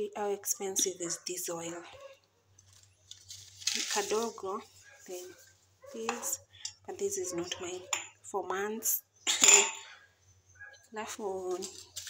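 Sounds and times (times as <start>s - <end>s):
woman coughing: 9.3s - 9.9s.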